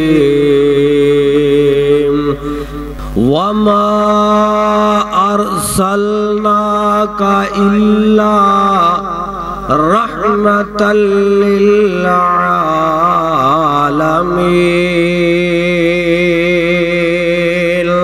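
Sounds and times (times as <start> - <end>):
man chanting melodically: 0.0 - 18.0.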